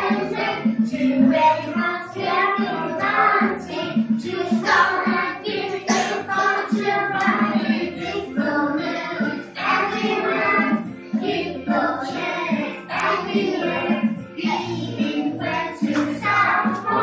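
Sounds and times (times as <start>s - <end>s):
children singing in unison: 0.0s - 17.0s
music playing along: 0.0s - 17.0s.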